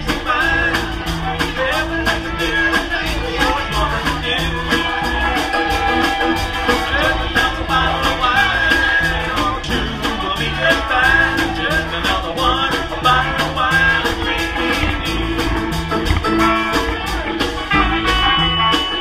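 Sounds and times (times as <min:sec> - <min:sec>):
country band playing: 0:00.0 - 0:19.0.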